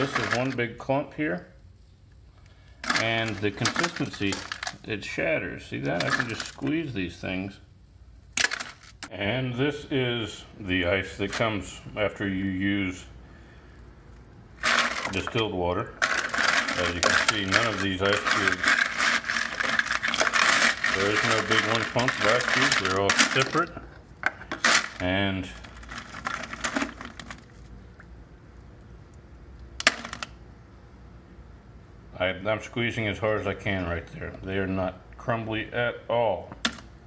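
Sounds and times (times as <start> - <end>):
ice cubes clattering: 0.0 - 0.6, 2.8 - 4.8, 5.9 - 6.6, 8.4 - 9.0, 14.6 - 15.4, 16.0 - 23.7, 24.5 - 27.7
plastic scoop digging into ice: 0.0 - 0.6, 14.6 - 15.4, 16.0 - 23.7.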